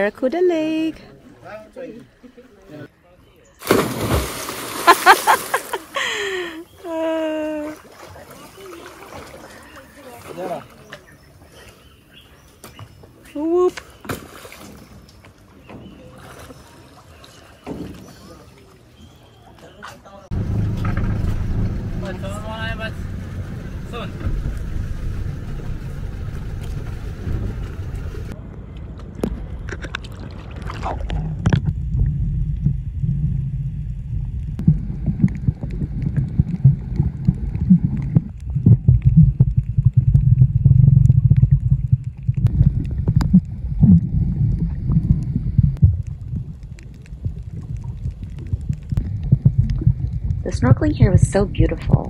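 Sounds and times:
small boat sounds: 3.6 - 52.0
underwater water rumble: 20.3 - 52.0
underwater knocks and sloshes: 23.0 - 52.0.

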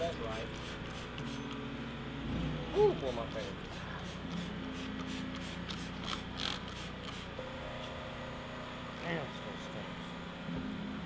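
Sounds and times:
spray bottle squirting: 0.3 - 1.6, 3.3 - 7.3.

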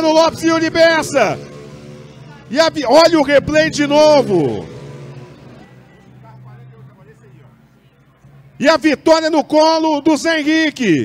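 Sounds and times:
faint voices: 0.0 - 9.6
faint music: 0.0 - 11.0.

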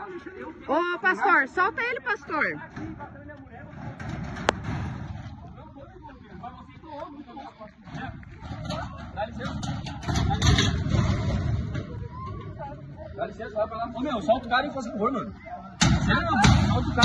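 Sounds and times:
indistinct voices of bystanders: 0.0 - 17.0.

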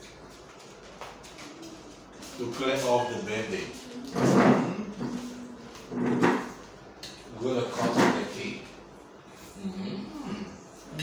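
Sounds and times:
plastic chair scraping floor: 4.0 - 6.8.

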